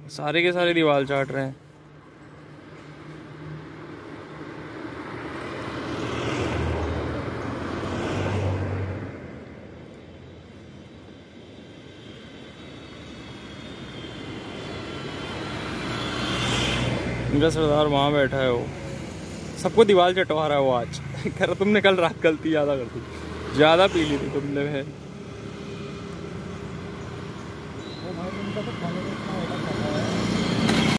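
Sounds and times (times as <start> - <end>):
vehicles passing: 0.0 - 30.9.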